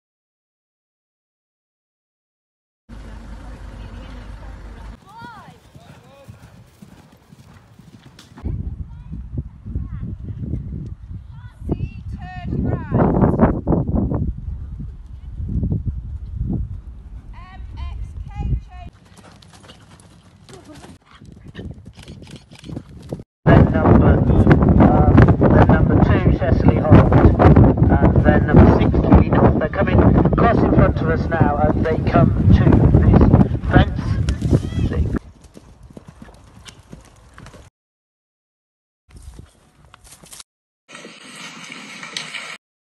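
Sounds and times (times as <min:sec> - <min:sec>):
pony hooves trotting: 0:04.0 - 0:08.4, 0:14.8 - 0:23.2, 0:34.3 - 0:37.7
steady low rumbling: 0:08.4 - 0:18.9, 0:23.5 - 0:35.2.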